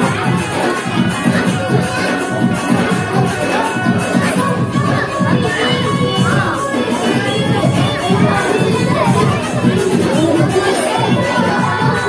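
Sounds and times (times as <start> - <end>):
children shouting and cheering: 0.0 - 12.0
dance song with steady beat: 0.0 - 12.0.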